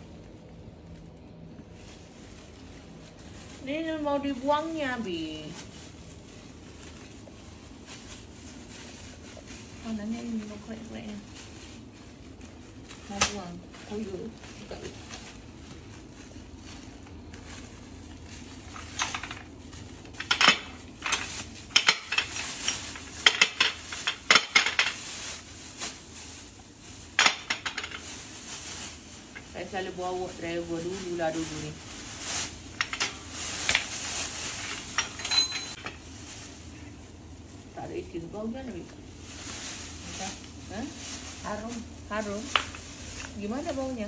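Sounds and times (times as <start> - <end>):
plastic bin bag rustling: 0.0 - 44.0
glass bottles clinking: 35.0 - 35.9.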